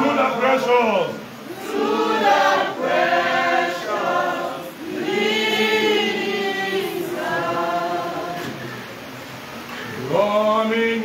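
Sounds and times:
congregation singing: 0.0s - 9.4s.

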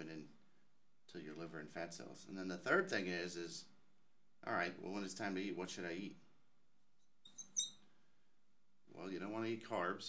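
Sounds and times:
marker squeaking on glass: 7.2s - 7.8s.

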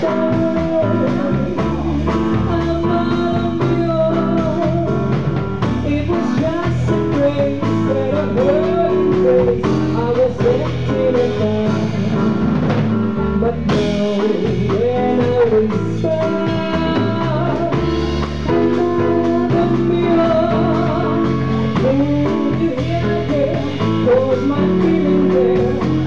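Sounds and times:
woman singing: 0.0s - 12.4s, 13.4s - 26.0s
drum kit: 0.0s - 26.0s
piano: 0.0s - 26.0s.

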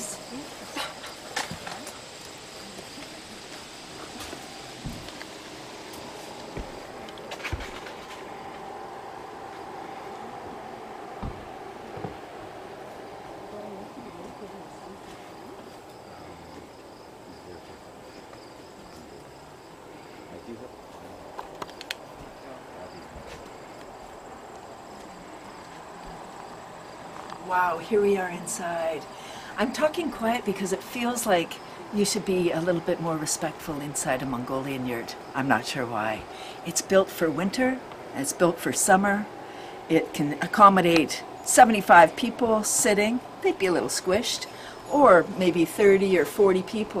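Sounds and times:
faint high hum: 0.0s - 47.0s
soft knocks: 11.2s - 12.2s.

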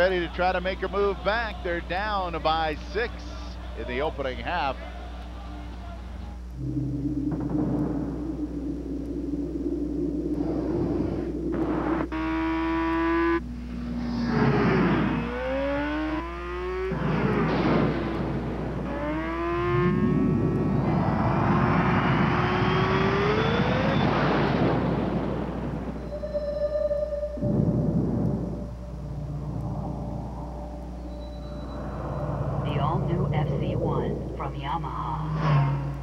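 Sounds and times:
motorcycle engine accelerating: 6.4s - 26.0s.

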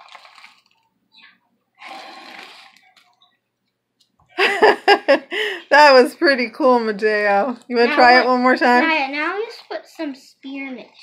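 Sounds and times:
breath blown through a straw: 1.8s - 2.8s.

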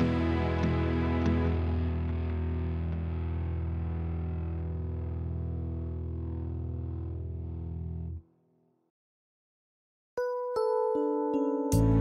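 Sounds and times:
sustained instrumental chord: 0.0s - 3.0s, 11.1s - 12.0s.

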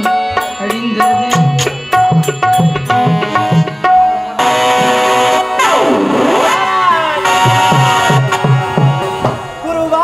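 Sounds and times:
harmonium notes: 0.0s - 10.0s
low tabla strokes: 0.1s - 9.6s.

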